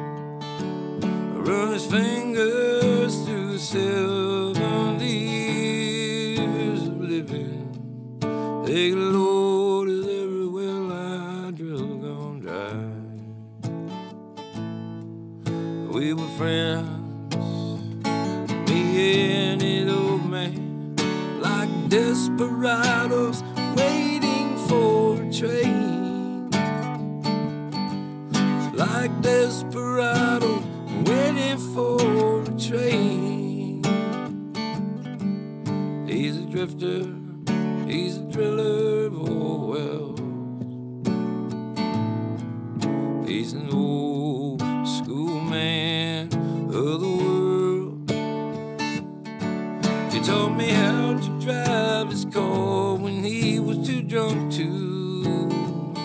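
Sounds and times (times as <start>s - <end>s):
acoustic guitar strumming: 0.0s - 56.0s
bending guitar melody: 0.0s - 56.0s.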